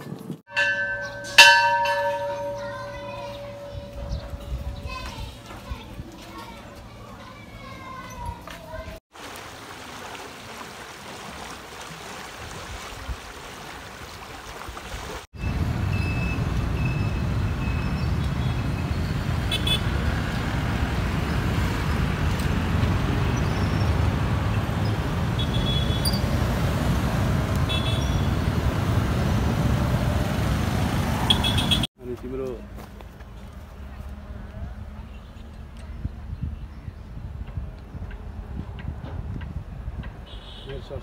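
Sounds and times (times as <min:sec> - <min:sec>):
road traffic passing: 0:00.0 - 0:12.2, 0:15.3 - 0:41.0
motorcycles passing: 0:00.5 - 0:08.1, 0:15.4 - 0:31.9.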